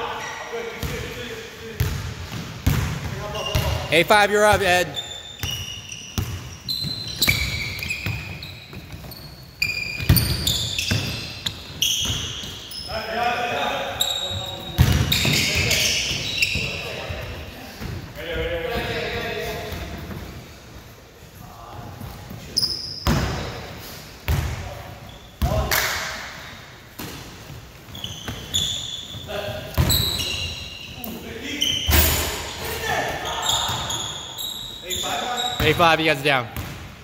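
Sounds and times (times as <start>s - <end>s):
sneakers squeaking: 0.0s - 37.0s
basketball bouncing on wood floor: 14.8s - 15.6s.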